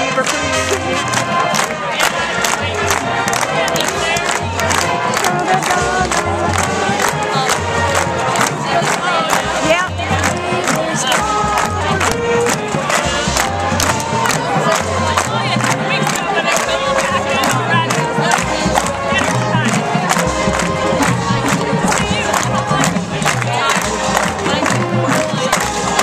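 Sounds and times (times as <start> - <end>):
crowd talking and cheering: 0.0 - 26.0
drums striking steady beat: 0.0 - 26.0
sustained low brass notes: 0.0 - 26.0.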